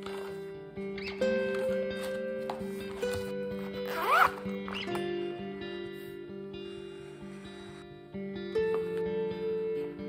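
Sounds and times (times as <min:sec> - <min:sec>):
soft background music: 0:00.0 - 0:10.0
pencil case zipper opening: 0:03.1 - 0:04.9.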